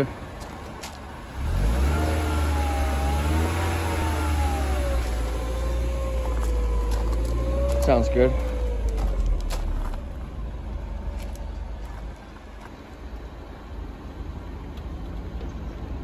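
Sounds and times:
car engine starting and idling: 0.0 - 16.0.

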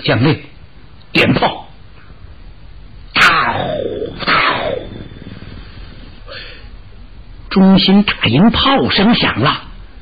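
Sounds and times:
recording hiss and hum: 0.0 - 10.0
faint breath: 5.0 - 6.9.

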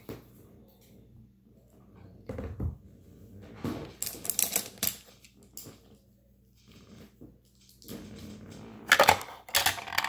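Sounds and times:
plastic items clicking and rattling: 3.9 - 5.8, 7.5 - 10.0.

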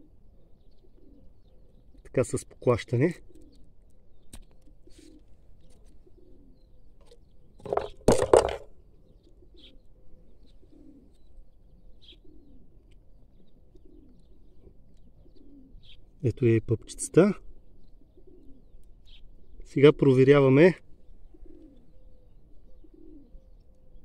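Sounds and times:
bird cooing: 0.0 - 3.8, 4.6 - 24.0.

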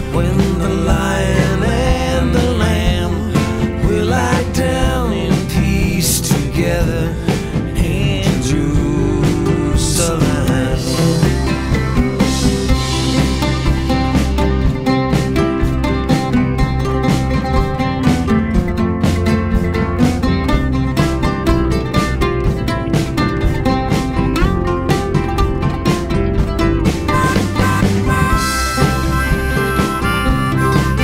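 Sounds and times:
guitar plucking melody: 0.0 - 31.0
oud plucking melody: 0.0 - 31.0
steady drum beat: 0.0 - 31.0
harmonica long held notes: 27.1 - 31.0.

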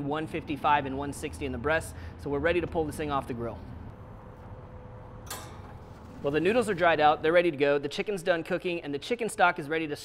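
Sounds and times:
grill humming: 3.9 - 7.4.

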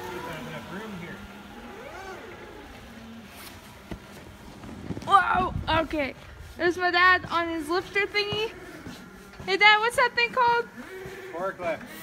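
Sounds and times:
electric forklift hum: 0.0 - 12.0.

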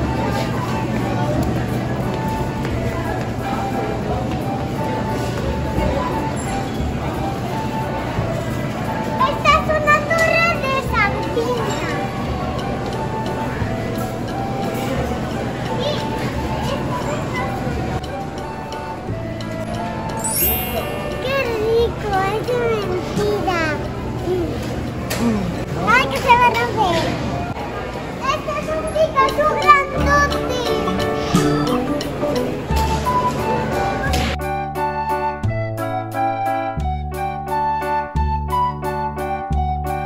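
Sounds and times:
background music: 0.0 - 25.5, 29.0 - 40.0
girl's high-pitched voice: 9.2 - 12.0, 15.7 - 17.5, 20.4 - 24.7, 25.8 - 27.1, 28.2 - 31.9.

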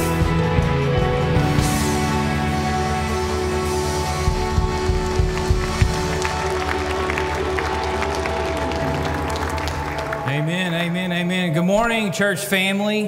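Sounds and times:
worship band sustained chord: 0.0 - 12.6
congregation clapping: 4.0 - 12.2
man speaking: 10.3 - 13.0.

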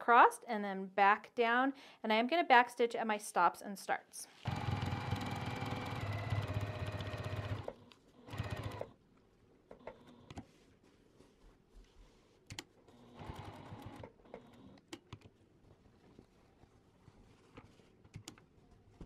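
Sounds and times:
sewing machine stitching: 4.4 - 8.9, 13.0 - 14.8.

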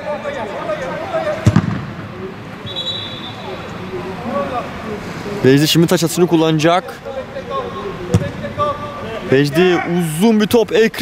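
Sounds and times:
football thudding: 1.4 - 2.0.

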